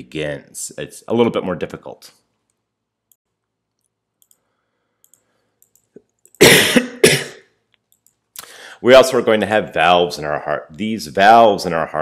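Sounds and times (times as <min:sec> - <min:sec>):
person coughing: 0:06.4 - 0:07.6.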